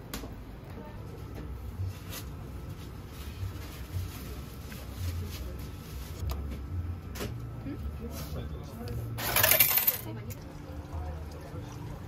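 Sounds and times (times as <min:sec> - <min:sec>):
coins clattering into tray: 0:09.2 - 0:10.1.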